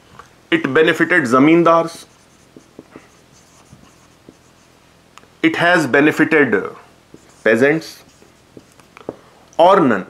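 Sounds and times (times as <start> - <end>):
marker squeaking on whiteboard: 1.9 - 4.8, 7.1 - 9.0.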